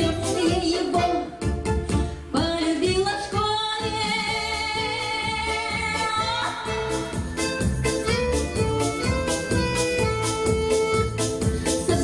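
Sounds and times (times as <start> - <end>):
woman singing into microphone: 0.0 - 1.3, 2.3 - 6.9, 11.8 - 12.0
backing music with steady beat: 0.0 - 12.0.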